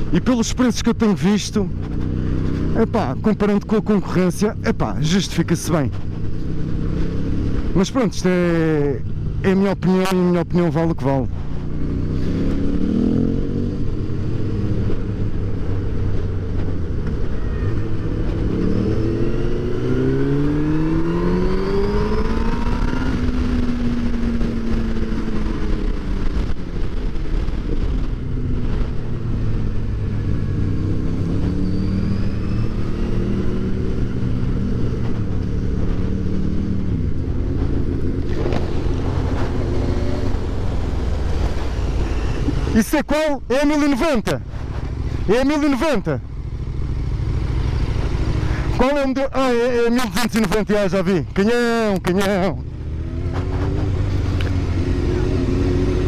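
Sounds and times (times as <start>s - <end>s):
motorcycle engine revving: 0.0s - 10.3s, 11.3s - 56.0s
wind noise: 11.2s - 43.5s.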